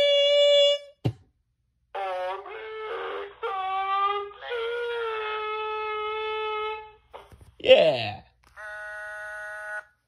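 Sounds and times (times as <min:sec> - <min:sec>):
person saying yeah: 0:07.6 - 0:08.3.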